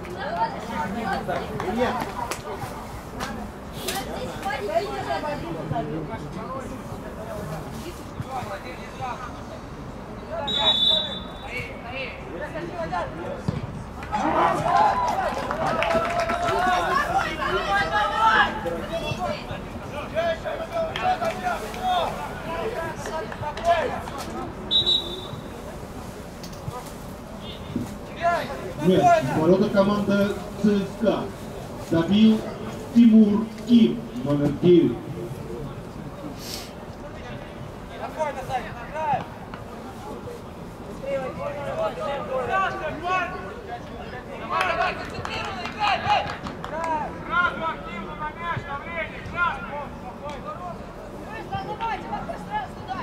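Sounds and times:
referee's whistle blast: 10.5s - 11.6s, 24.7s - 25.4s
people shouting and calling out: 14.0s - 25.6s.

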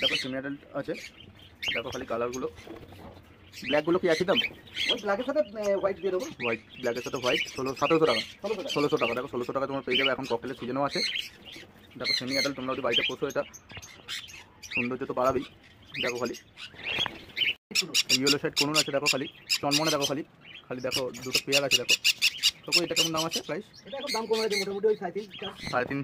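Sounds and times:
parrots calling and squawking: 0.0s - 26.0s.

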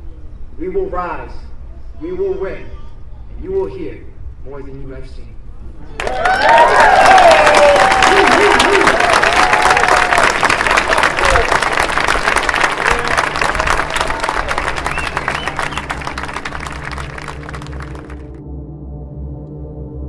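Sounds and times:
audience applauding: 6.0s - 18.4s
low music: 11.5s - 20.0s.

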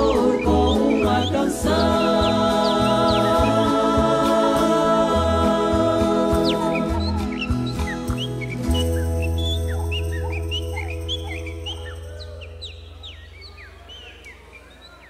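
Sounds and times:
acoustic guitars and band chords: 0.0s - 14.2s
songbirds chirping and whistling: 0.0s - 15.0s.

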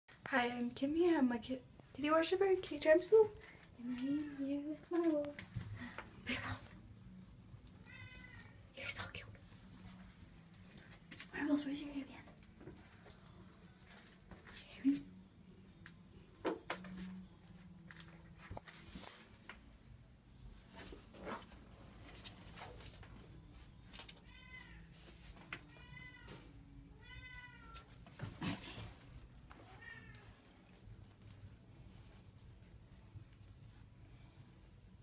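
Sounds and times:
cat meowing: 7.9s - 8.6s, 25.7s - 27.8s, 29.7s - 30.4s.

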